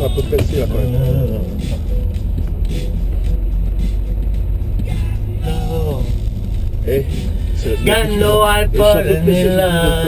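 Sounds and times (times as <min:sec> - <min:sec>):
car interior low rumble: 0:00.0 - 0:10.0.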